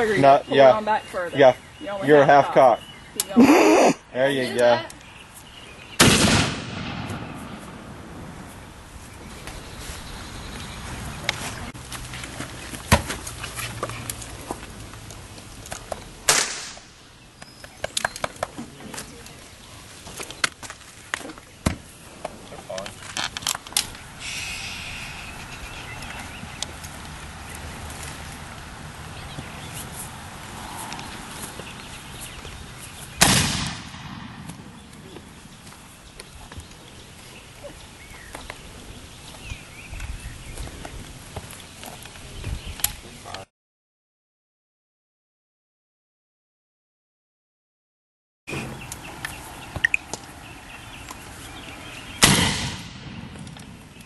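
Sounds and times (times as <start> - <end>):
gunshot with echo: 6.0 - 7.9, 16.3 - 16.9, 33.2 - 34.5, 52.2 - 53.4.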